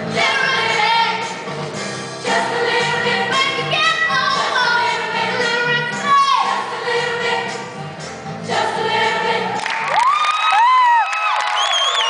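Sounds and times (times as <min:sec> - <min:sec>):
choir singing: 0:02.1 - 0:07.8, 0:08.4 - 0:09.7.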